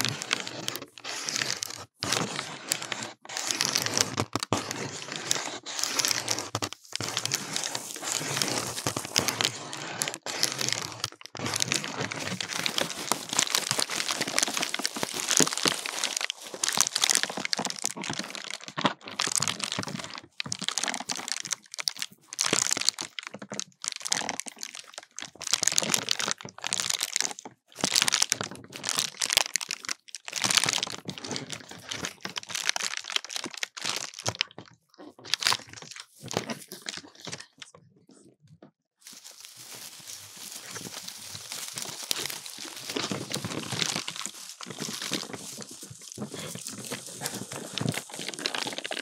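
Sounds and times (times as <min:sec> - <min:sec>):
paper and tinsel crinkling: 0:00.0 - 0:23.2, 0:39.0 - 0:49.0.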